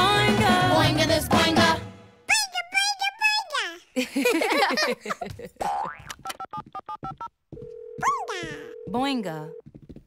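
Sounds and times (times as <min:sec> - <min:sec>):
bouncing boing tones: 0:05.6 - 0:07.3.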